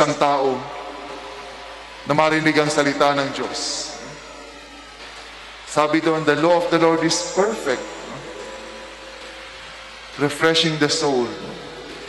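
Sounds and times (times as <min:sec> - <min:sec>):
room hiss and hum: 0:00.0 - 0:12.0.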